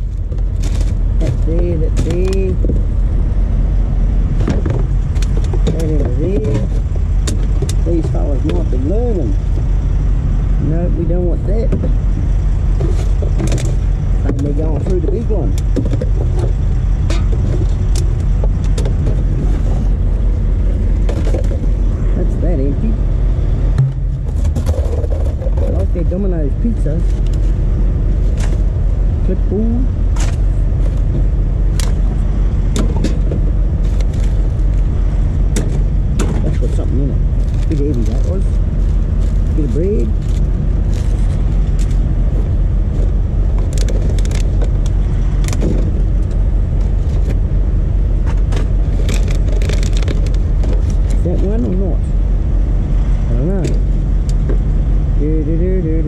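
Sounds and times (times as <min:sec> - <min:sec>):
plastic bottles rummaged in bin: 0:00.0 - 0:02.5, 0:36.2 - 0:42.0, 0:48.4 - 0:51.2
low machine drone: 0:00.0 - 0:56.0.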